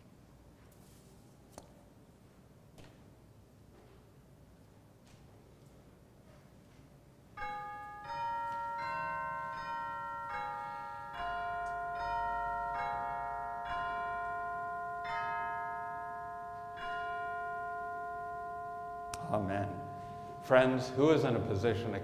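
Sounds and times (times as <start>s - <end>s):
bell-like melody: 7.4s - 22.0s.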